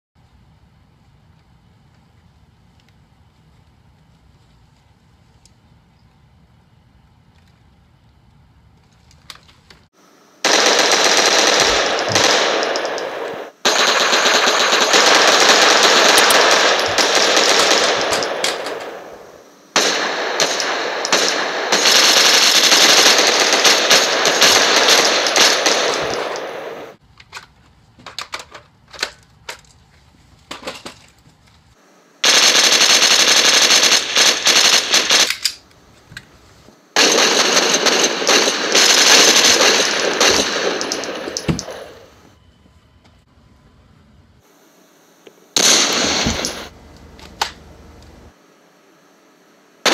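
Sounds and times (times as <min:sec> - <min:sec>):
automatic gunfire bursts: 0:10.4 - 0:27.0, 0:32.2 - 0:35.6, 0:37.0 - 0:42.1, 0:45.6 - 0:46.7
sharp clicks: 0:10.5 - 0:27.5, 0:37.0 - 0:41.9.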